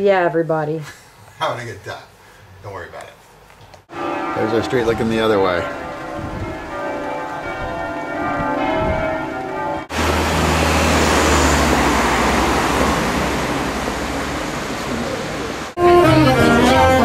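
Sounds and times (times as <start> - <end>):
street noise roar: 3.7 - 17.0
church bells ringing: 3.9 - 12.8.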